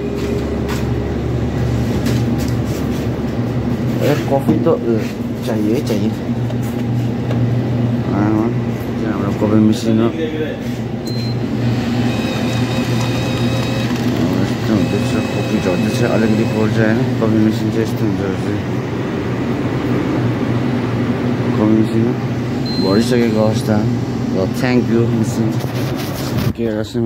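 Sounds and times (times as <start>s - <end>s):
coffee machine humming: 0.0s - 26.2s.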